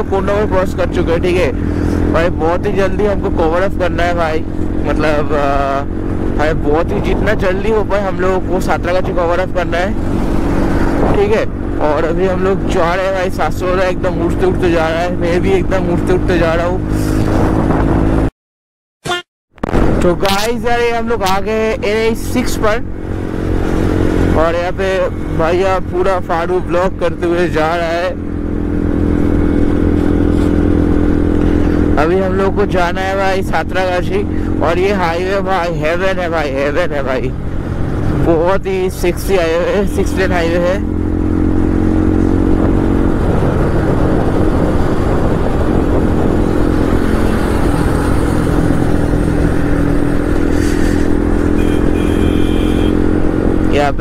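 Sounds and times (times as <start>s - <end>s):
motorcycle engine cruising: 0.0s - 18.3s, 19.6s - 54.0s
road and wind noise: 0.0s - 18.3s, 19.5s - 54.0s
heavy wind rush on microphone: 4.2s - 15.8s, 16.4s - 18.3s, 41.6s - 51.6s.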